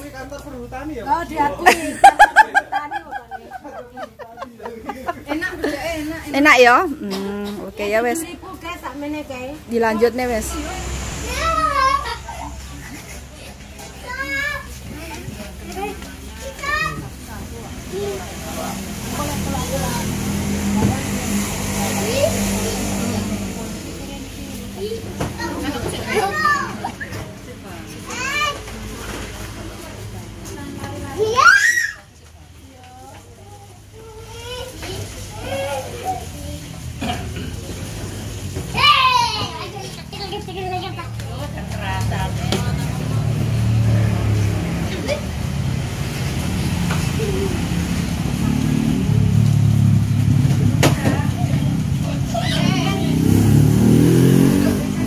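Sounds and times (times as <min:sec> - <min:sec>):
background chatter: 0:00.0 - 0:55.0
faint voices: 0:00.0 - 0:55.0
traffic engine rumble: 0:00.0 - 0:55.0
children calling out: 0:10.6 - 0:17.2, 0:24.5 - 0:29.0, 0:31.0 - 0:32.3, 0:33.3 - 0:41.5, 0:46.7 - 0:50.0, 0:50.9 - 0:55.0.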